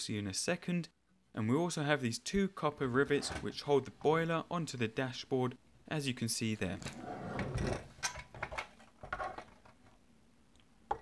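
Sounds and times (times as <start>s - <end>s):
metal toy scraping on table: 6.8s - 8.0s.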